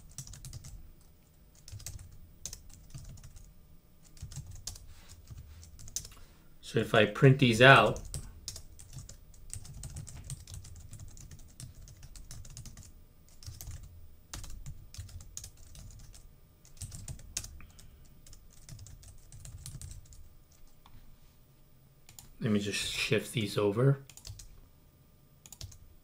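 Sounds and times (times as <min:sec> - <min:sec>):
typing on computer keyboard: 0:00.0 - 0:00.8, 0:01.5 - 0:06.1, 0:07.9 - 0:20.7, 0:24.1 - 0:24.5, 0:25.4 - 0:25.8.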